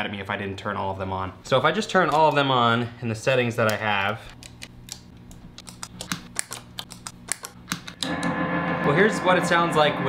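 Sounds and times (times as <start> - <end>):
distorted steady drone: 8.0 - 10.0.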